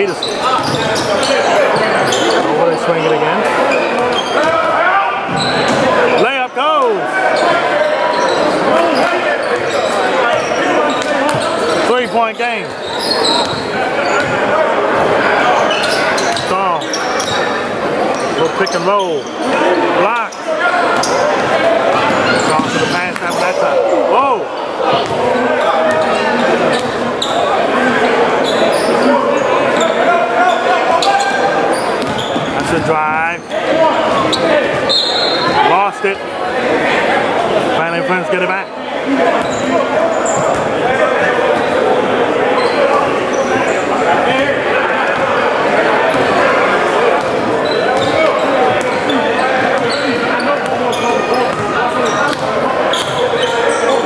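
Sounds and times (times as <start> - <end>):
chatter of spectators: 0.0 - 54.0
sneakers squeaking: 0.0 - 54.0.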